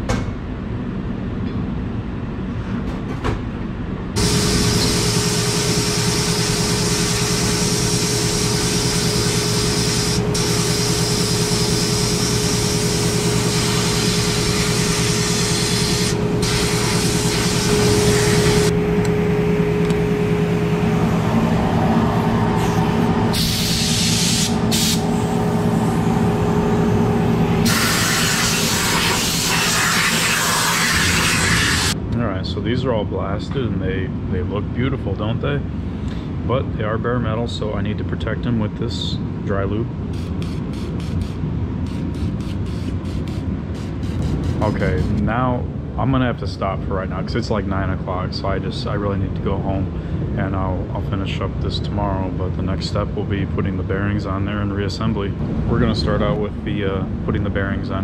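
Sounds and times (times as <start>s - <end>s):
steady hum: 3.6s - 58.0s
blast gun spraying grit: 4.2s - 18.7s, 27.6s - 31.9s.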